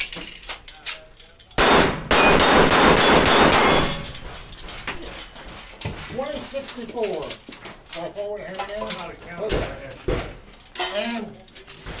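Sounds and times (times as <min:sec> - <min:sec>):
people talking: 0:08.0 - 0:10.2.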